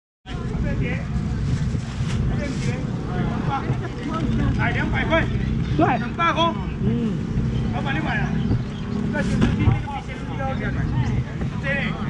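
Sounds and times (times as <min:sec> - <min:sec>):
crowd voices: 0:00.3 - 0:12.0
heavy low rumble: 0:00.3 - 0:12.0.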